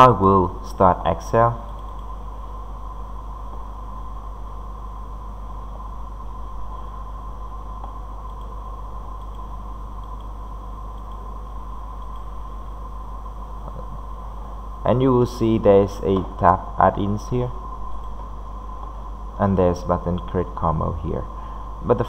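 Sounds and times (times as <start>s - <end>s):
steady background hum and hiss: 0.0s - 22.0s.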